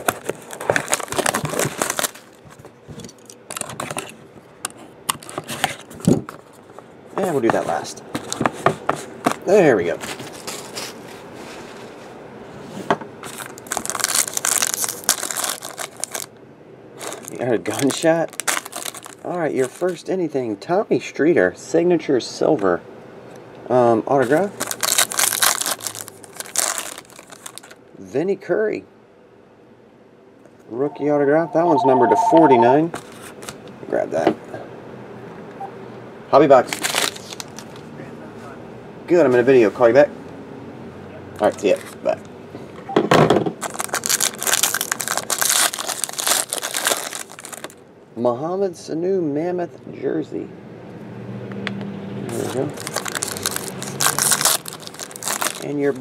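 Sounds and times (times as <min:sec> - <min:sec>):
foil pack crinkling and tearing: 0:00.0 - 0:02.6, 0:13.2 - 0:16.3, 0:17.0 - 0:20.0, 0:24.4 - 0:27.8, 0:36.6 - 0:37.8, 0:43.6 - 0:47.8, 0:52.4 - 0:56.0
person speaking: 0:30.7 - 0:32.9.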